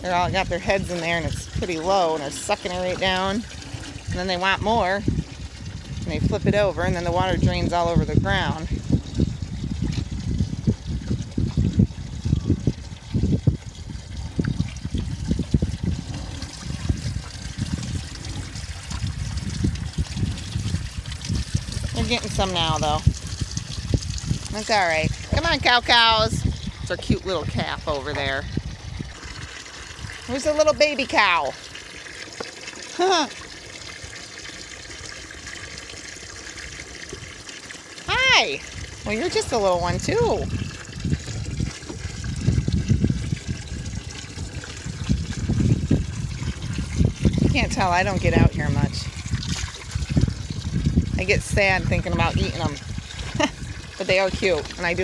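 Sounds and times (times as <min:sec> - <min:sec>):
calves slurping water: 0:00.0 - 0:55.0.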